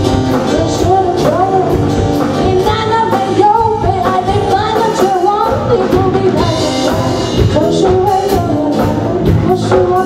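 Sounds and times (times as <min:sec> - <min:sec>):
drum kit and cymbals beat: 0:00.0 - 0:10.0
live rock band: 0:00.0 - 0:10.0
woman singing pop song: 0:00.1 - 0:10.0.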